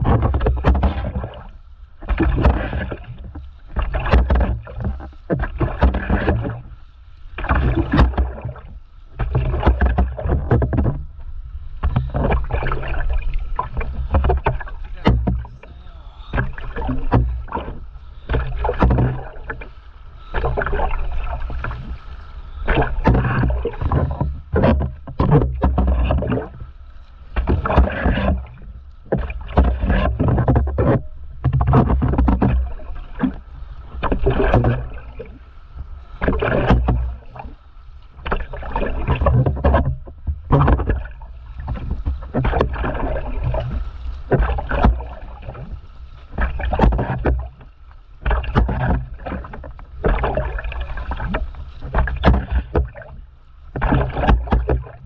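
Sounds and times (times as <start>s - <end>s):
paddle strokes splashing in water: 0.0s - 55.0s.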